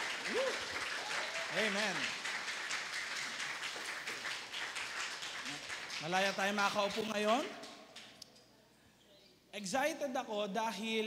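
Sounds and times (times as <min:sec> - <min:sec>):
people clapping: 0:00.0 - 0:08.2.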